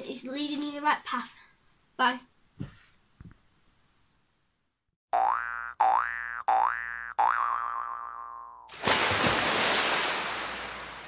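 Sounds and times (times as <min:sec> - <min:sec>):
cartoon boing sound effects: 0:05.1 - 0:08.7.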